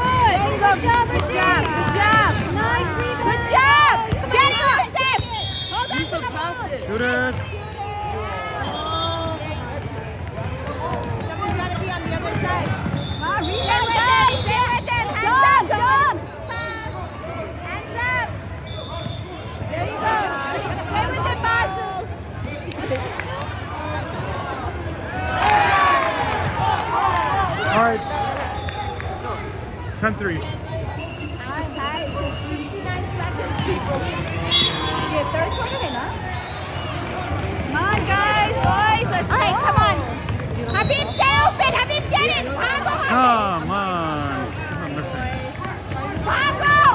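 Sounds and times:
shoe squeaks: 8.6s - 14.9s, 18.6s - 19.5s, 30.9s - 32.8s, 34.1s - 36.6s, 39.4s - 41.6s
basketball bouncing on court: 9.2s - 15.1s, 37.1s - 41.4s, 44.5s - 46.9s.

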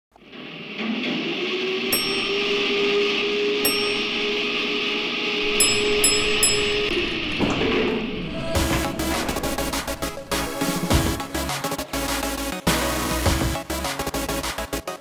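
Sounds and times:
airy electronic swell: 0.6s - 12.7s
electronic music: 1.4s - 15.0s
bright chime-like hits: 1.9s - 7.6s.

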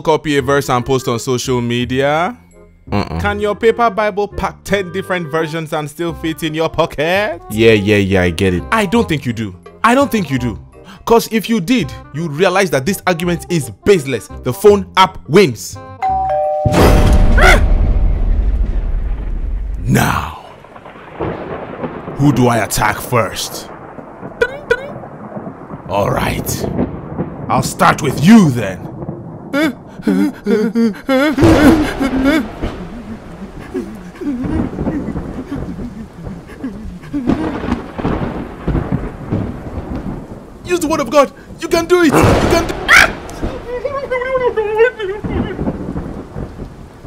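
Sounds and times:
rain: 5.0s - 15.7s, 16.7s - 47.0s
two-note chime: 16.0s - 17.3s
thunderclap rumbling: 16.7s - 47.0s.

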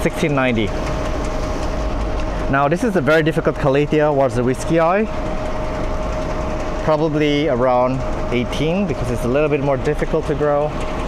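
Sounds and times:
mechanical hum with low rumble: 0.0s - 11.0s.

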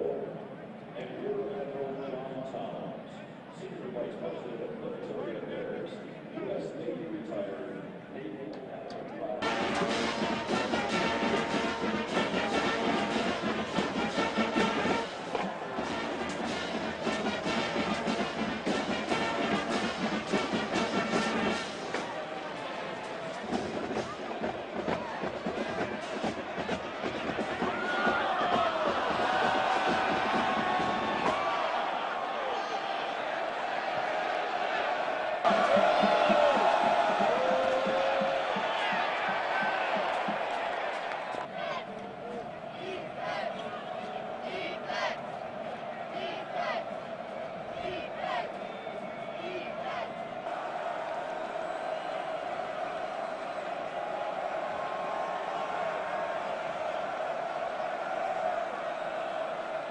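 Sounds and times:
stadium crowd noise: 0.0s - 59.9s
music: 9.4s - 31.8s, 35.5s - 41.4s
voices: 21.8s - 51.6s.

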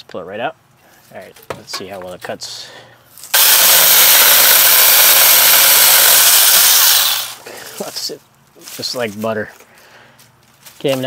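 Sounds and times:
mini chainsaw cutting wood: 3.3s - 7.4s.

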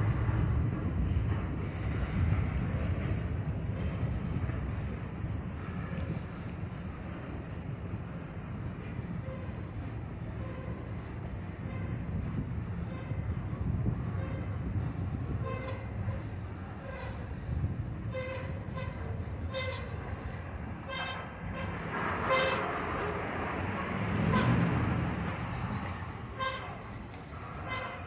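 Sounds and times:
freight car wheels rumbling on rail: 0.0s - 28.0s
wheels squealing: 8.6s - 28.0s.

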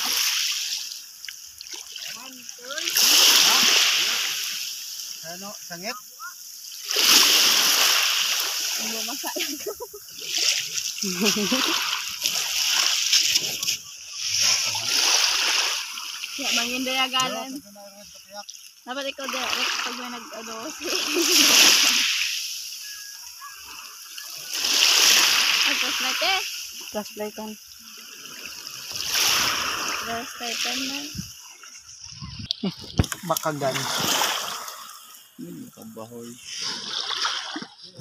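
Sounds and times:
water splashing in heavy surges: 0.0s - 38.0s
voices talking: 2.1s - 4.4s, 5.2s - 6.8s, 8.7s - 12.3s, 13.2s - 15.4s, 16.0s - 22.2s, 22.8s - 28.1s, 29.8s - 36.8s.

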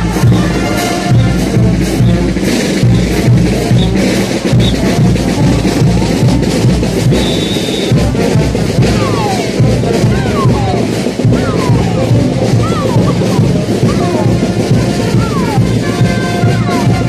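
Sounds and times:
bass drum beat: 0.0s - 17.0s
festival band music: 0.0s - 17.0s
snare drum beat: 0.0s - 17.0s.

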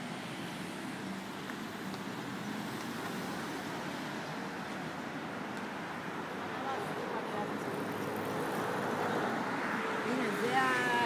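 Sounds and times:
city street traffic: 0.0s - 11.0s.

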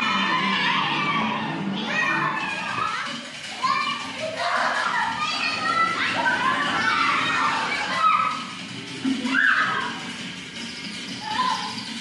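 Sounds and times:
young children playing and calling: 0.0s - 12.0s.

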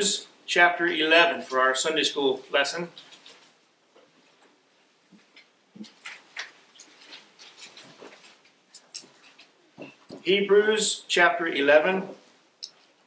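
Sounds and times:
thin pages being turned: 5.9s - 9.5s.

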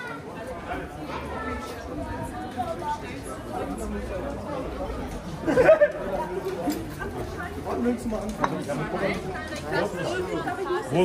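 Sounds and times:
passers-by chattering: 0.0s - 11.0s.

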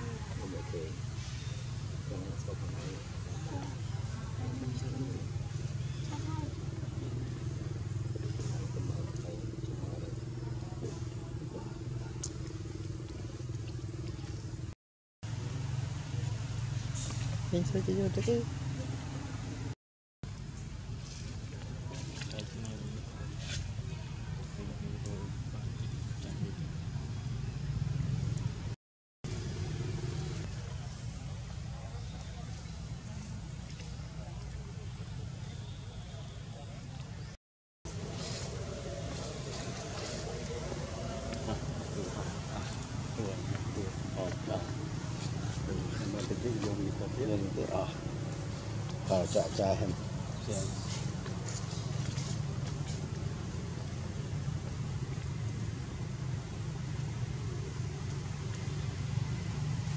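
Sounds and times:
faint indistinct voices: 0.0s - 14.4s, 29.9s - 48.2s
low engine hum: 0.0s - 36.0s, 37.9s - 59.9s.

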